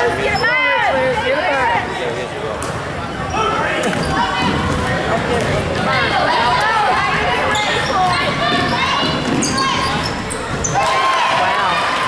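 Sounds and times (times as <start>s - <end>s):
spectators talking and calling out: 0.0s - 12.0s.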